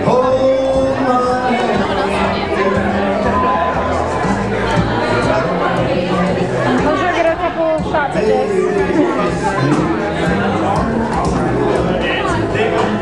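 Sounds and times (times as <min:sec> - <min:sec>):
chatter of many guests: 0:00.0 - 0:13.0.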